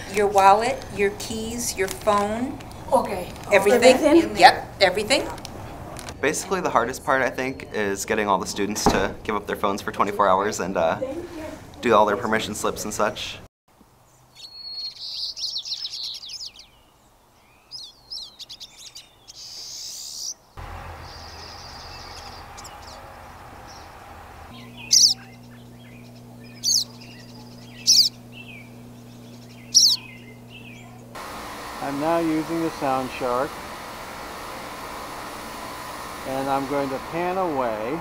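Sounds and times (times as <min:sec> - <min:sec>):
songbirds chirping: 0:00.0 - 0:10.8, 0:13.9 - 0:38.0
loud sharp bird calls: 0:14.3 - 0:16.8, 0:17.4 - 0:31.0
low steady hum: 0:20.6 - 0:38.0.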